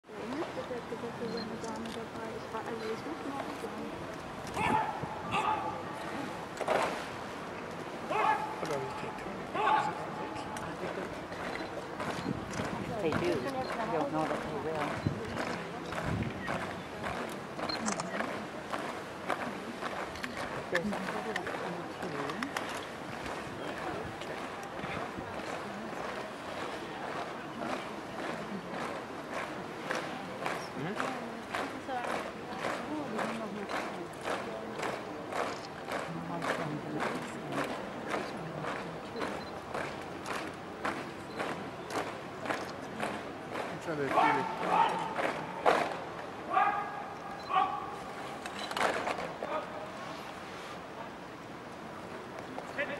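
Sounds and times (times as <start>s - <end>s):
murmur of crowd chatter: 0.0s - 52.9s
boots on cobblestones: 8.1s - 49.7s.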